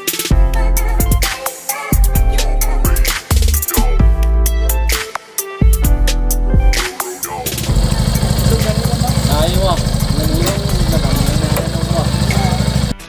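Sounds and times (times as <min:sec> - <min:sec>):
man talking: 0:07.3 - 0:12.9
motorcycle engine idling: 0:07.4 - 0:13.0.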